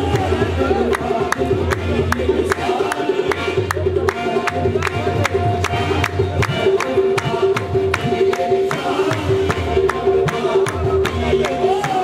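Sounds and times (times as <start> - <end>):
harmoniums holding notes: 0.0 - 12.0.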